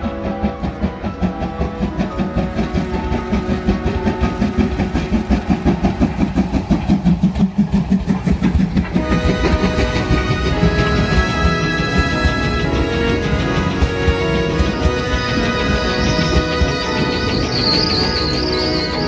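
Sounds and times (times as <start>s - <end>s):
background music: 0.0s - 19.0s
steam locomotive chuffing: 0.0s - 19.0s.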